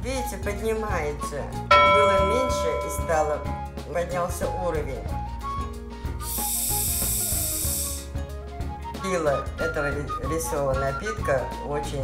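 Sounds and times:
gas hissing from bottle: 0:06.2 - 0:08.1.

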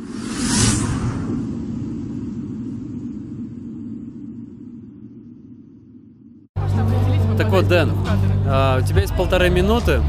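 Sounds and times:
whoosh: 0:00.0 - 0:06.5
low rumble: 0:00.0 - 0:07.3.

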